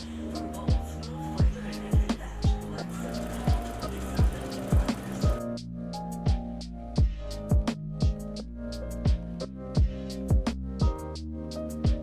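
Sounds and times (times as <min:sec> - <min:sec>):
held synth chords: 0:02.9 - 0:05.5.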